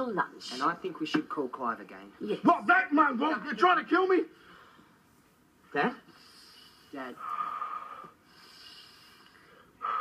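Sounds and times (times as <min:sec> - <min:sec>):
man breathing in deeply: 0:06.2 - 0:10.0.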